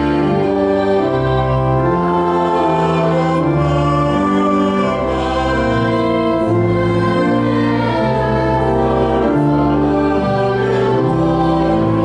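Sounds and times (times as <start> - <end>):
congregation singing: 0.0 - 12.0
pipe organ chords: 0.0 - 12.0.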